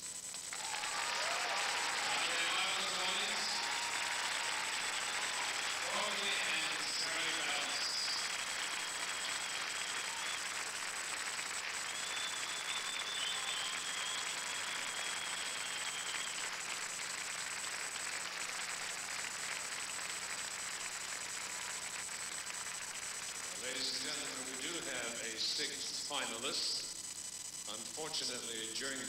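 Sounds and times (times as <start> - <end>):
audience applauding: 0.0 - 25.8.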